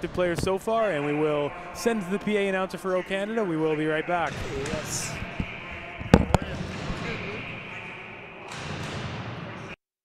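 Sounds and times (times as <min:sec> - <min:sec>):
hockey arena background noise: 0:00.0 - 0:09.8
sharp knocks: 0:06.1 - 0:07.1.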